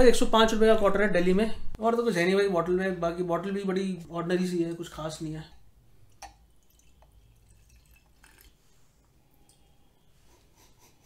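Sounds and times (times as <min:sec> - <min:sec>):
small drips: 0:04.8 - 0:09.8
liquid trickling into a glass: 0:06.1 - 0:08.8.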